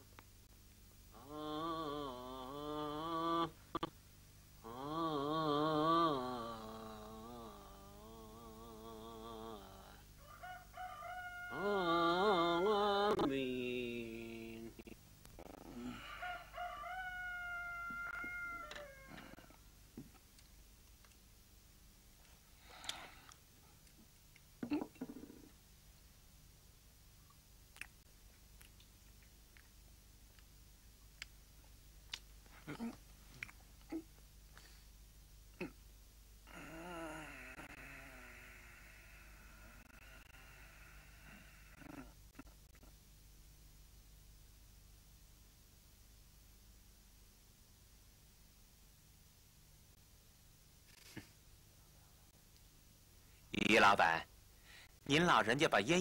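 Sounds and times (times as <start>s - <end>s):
rooster crowing: 10.2s - 12.7s, 15.8s - 19.6s.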